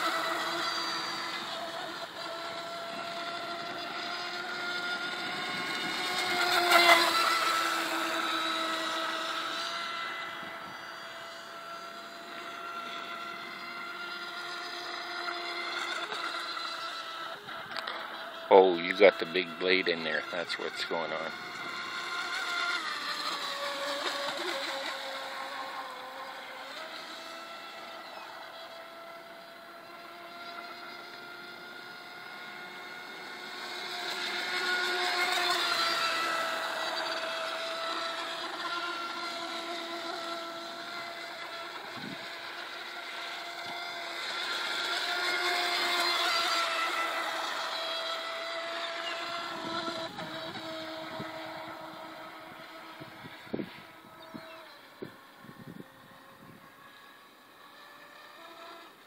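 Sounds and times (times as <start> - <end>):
electric boat motor whine: 0.0 - 59.0.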